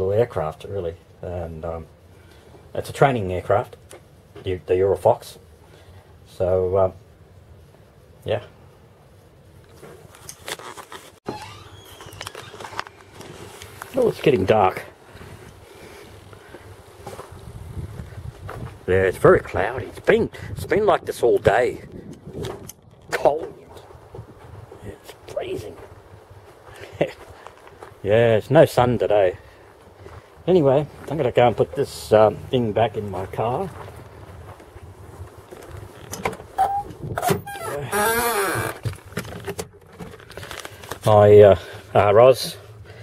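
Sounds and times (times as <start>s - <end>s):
wind buffeting microphone: 17.2s - 24.9s, 36.8s - 37.4s.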